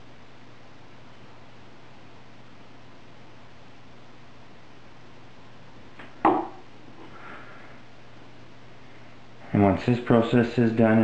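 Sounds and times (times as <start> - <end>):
hard object knocking on wood: 6.2 - 6.6.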